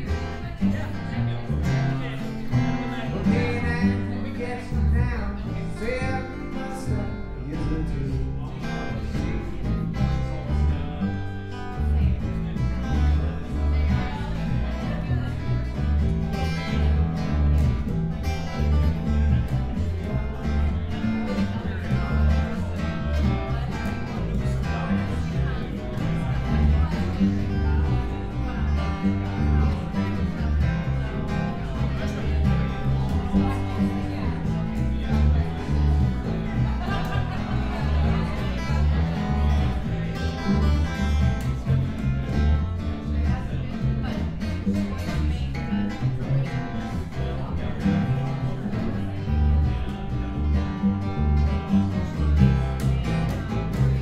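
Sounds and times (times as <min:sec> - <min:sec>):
acoustic guitar: 0:00.0 - 0:54.0
live country band: 0:00.0 - 0:54.0.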